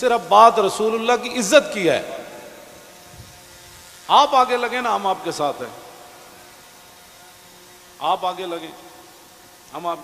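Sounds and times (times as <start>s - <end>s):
hiss: 0.0s - 10.0s
thin steady tones: 0.0s - 10.0s.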